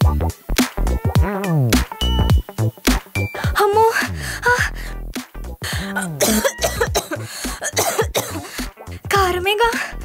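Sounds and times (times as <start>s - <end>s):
woman clearing her throat: 5.8s - 8.5s
woman coughing: 5.8s - 8.5s.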